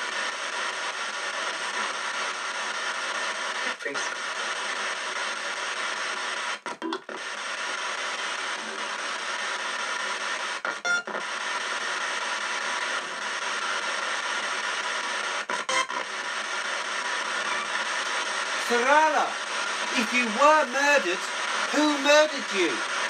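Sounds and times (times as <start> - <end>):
radio static hiss: 0.0 - 23.0.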